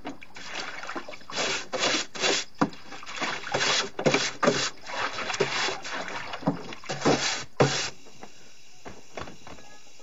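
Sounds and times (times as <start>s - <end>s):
water sloshing in wooden tub: 0.0s - 7.9s.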